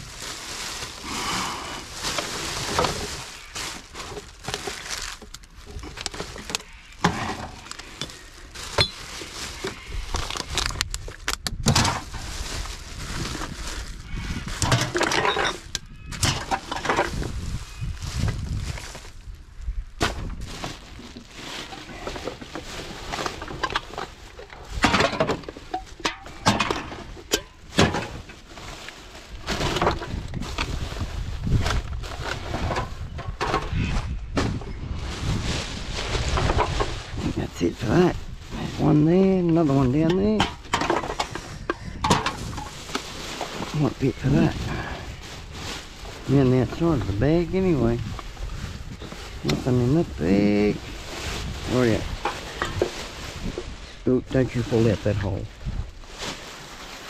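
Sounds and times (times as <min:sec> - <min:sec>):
plastic bags rustling: 0:00.0 - 0:57.0
bottles and cans clinking: 0:05.8 - 0:09.4, 0:14.6 - 0:17.2.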